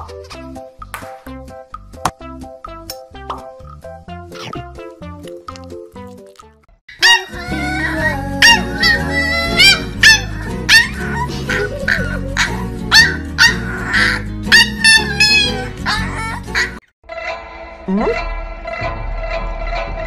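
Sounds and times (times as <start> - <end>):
background music: 0.0 - 20.0
puppy yipping: 6.9 - 16.8.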